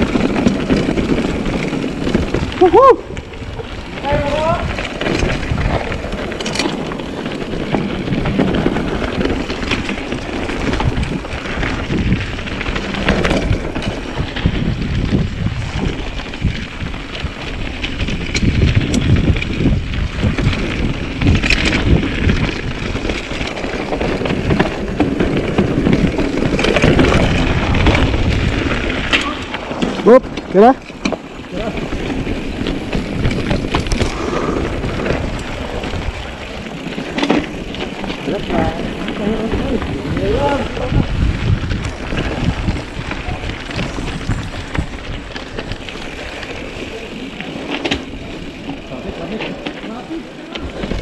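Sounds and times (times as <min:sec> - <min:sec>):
bike tyre rumble and rattling: 0:00.0 - 0:51.0
wind buffeting microphone: 0:00.0 - 0:51.0.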